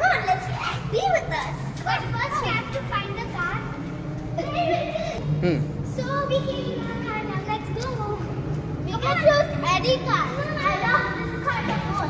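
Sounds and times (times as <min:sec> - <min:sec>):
children calling and chattering: 0:00.0 - 0:12.0.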